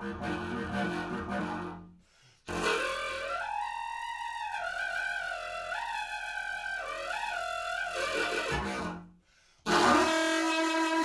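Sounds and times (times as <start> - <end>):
pipe wind instrument high note: 2.5 - 9.0, 9.7 - 11.0.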